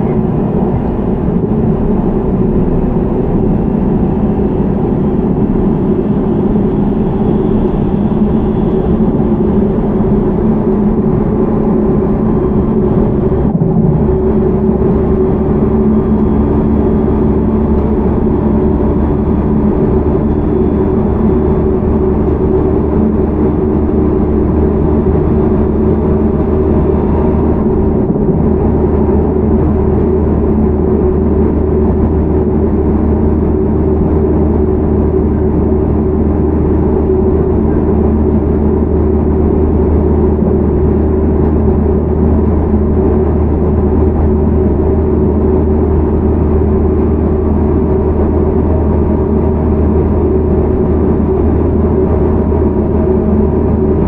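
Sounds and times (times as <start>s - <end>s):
steady electric hum: 0.0s - 54.0s
train wheels rumbling on rails: 0.0s - 54.0s.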